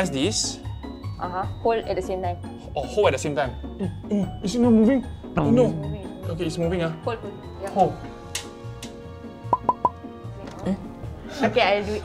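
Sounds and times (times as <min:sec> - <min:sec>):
background music: 0:00.0 - 0:12.0
cartoon pop sound effects: 0:09.5 - 0:10.0.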